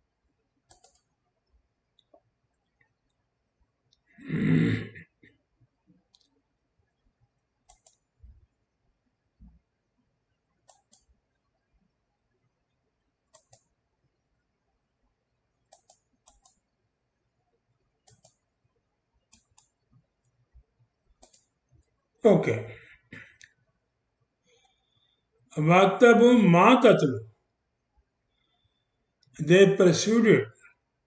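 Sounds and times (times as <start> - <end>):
computer mouse clicks: 0.6 - 3.2, 6.0 - 6.4, 7.6 - 8.3, 10.5 - 11.4, 13.3 - 13.8, 15.6 - 16.7, 18.0 - 18.5, 19.2 - 20.4, 21.1 - 22.0.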